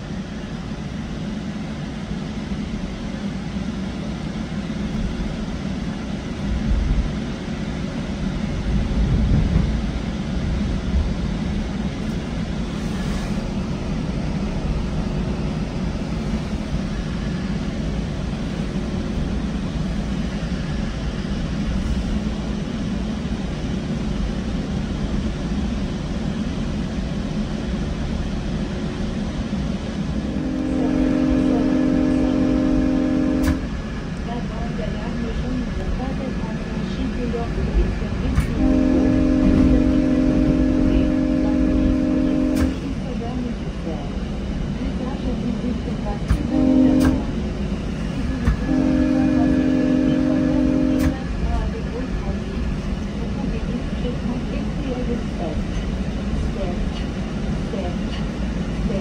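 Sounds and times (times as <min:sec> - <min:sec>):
train rumbling on rails: 0:00.0 - 0:59.0
locomotive horn: 0:30.2 - 0:33.7, 0:38.4 - 0:42.8, 0:46.3 - 0:47.4, 0:48.4 - 0:51.2.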